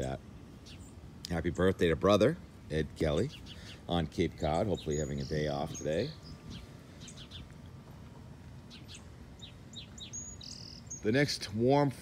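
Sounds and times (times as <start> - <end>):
low outdoor background: 0.0 - 12.0
songbirds chirping: 0.0 - 12.0.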